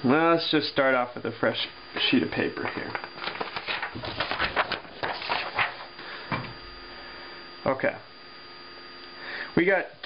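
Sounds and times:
faint steady hum: 0.0s - 10.0s
paper rustling: 2.6s - 5.9s.

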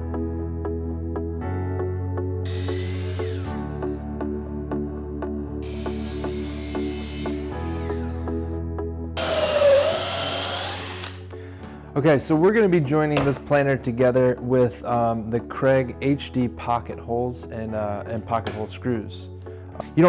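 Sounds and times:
miter saw cutting wood: 2.5s - 3.7s, 5.6s - 8.2s, 9.2s - 11.2s
background music with a beat: 19.4s - 20.0s.

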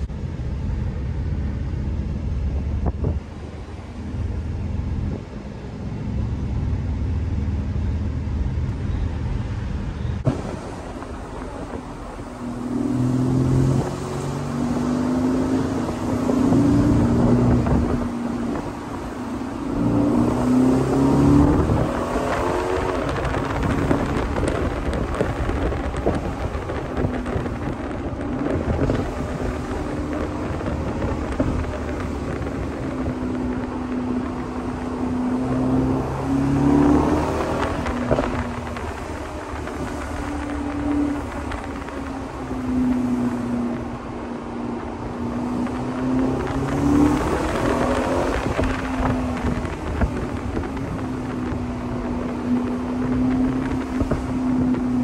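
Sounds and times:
car engine revving: 0.0s - 55.0s
wind rush: 1.2s - 5.4s, 9.3s - 55.0s.

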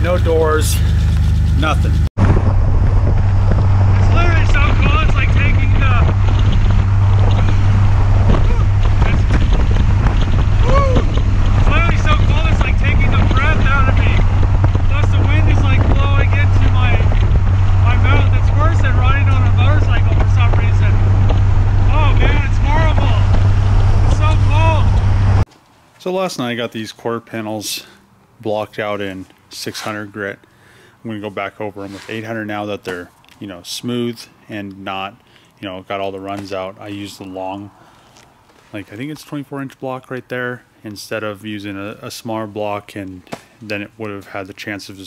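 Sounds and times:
car engine rumble: 0.0s - 25.5s
wind noise: 0.0s - 25.5s.

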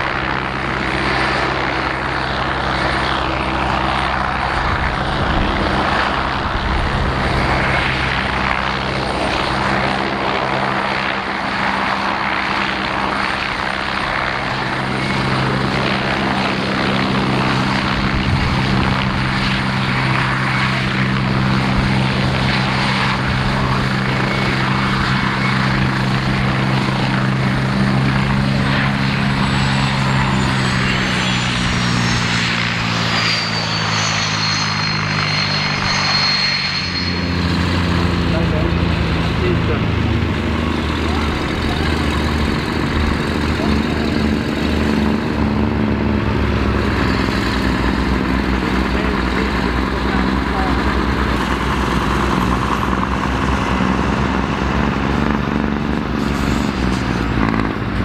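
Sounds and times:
helicopter rotor and engine drone: 0.0s - 58.0s
high turbine whine: 0.0s - 58.0s.

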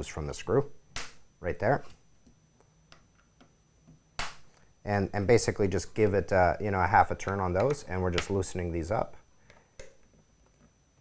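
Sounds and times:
sharp plastic pop: 1.0s - 1.2s, 4.2s - 4.4s.

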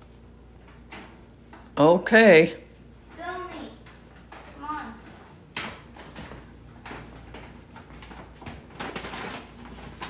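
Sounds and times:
paper bag crinkling: 7.0s - 10.0s.

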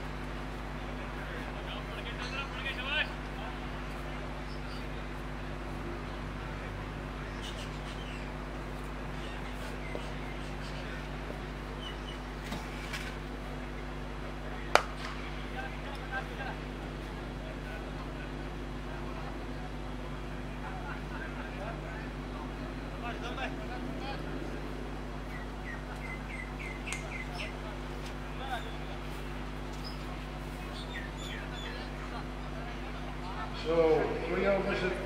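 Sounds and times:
faint distant voices: 0.0s - 35.0s
steady low hum: 0.0s - 35.0s
birds chirping: 1.7s - 12.4s, 24.7s - 35.0s.

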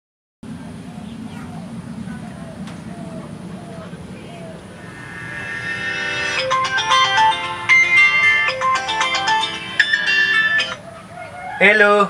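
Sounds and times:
mobile phone melodic ringtone: 4.8s - 10.8s.

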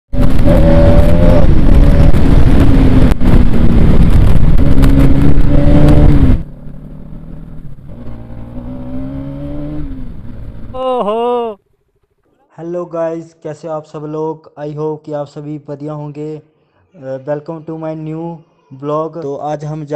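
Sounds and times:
wind noise on microphone: 0.1s - 6.5s
motorcycle engine revving: 0.1s - 10.8s.

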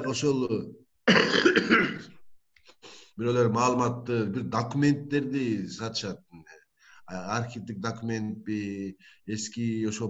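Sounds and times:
man coughing: 1.1s - 2.1s.

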